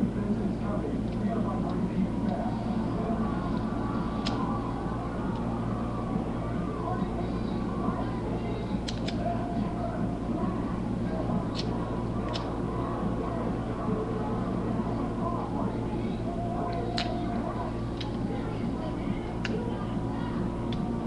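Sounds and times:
electrical hum and hiss: 0.0 - 21.0.

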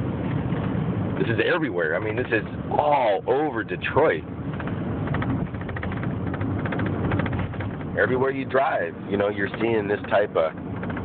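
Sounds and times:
car engine and tyre drone: 0.0 - 11.0.

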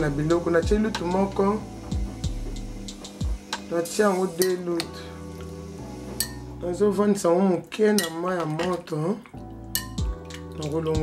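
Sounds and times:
music with singing voice: 0.0 - 11.0
metal spoon clinking on glass bowl: 6.2 - 6.4, 8.0 - 8.8, 9.7 - 10.4.

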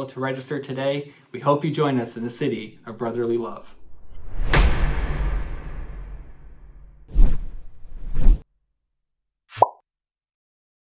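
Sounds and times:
plop with falling blip: 9.6 - 9.8.

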